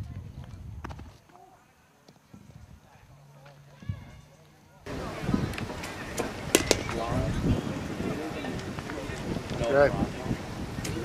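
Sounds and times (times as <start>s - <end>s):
faint distant voices: 1.2s - 11.0s
sharp click: 6.6s - 7.0s.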